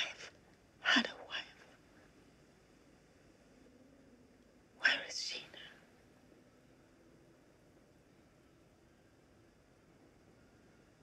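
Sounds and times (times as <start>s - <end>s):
woman whispering: 0.0s - 1.8s, 4.8s - 5.8s
faint hiss: 0.0s - 11.0s.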